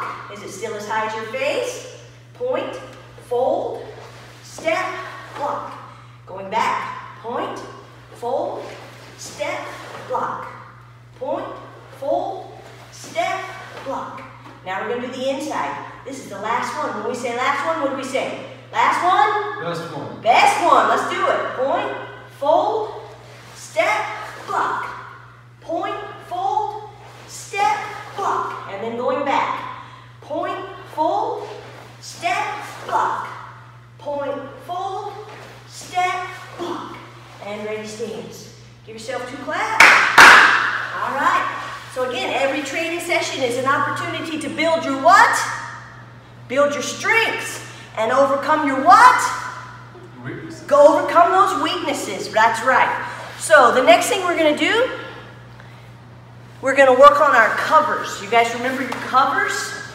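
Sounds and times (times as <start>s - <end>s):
woman calling commands: 0.0s - 19.6s, 20.2s - 23.0s, 23.6s - 39.9s, 40.9s - 45.9s, 46.5s - 49.8s, 50.6s - 55.2s, 56.6s - 59.9s
steady low hum: 0.0s - 59.9s.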